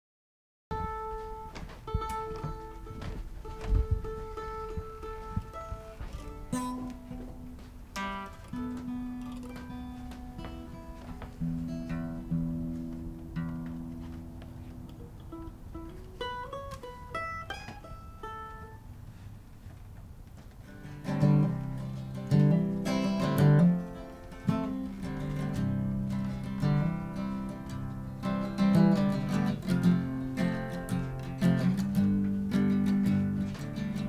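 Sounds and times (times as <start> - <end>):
mandolin picking: 0.7 - 19.4, 20.6 - 34.0
acoustic guitar picking: 0.7 - 34.0.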